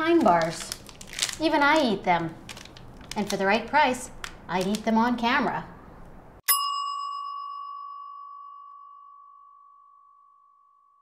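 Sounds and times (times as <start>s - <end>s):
small bell ringing: 6.5s - 11.0s.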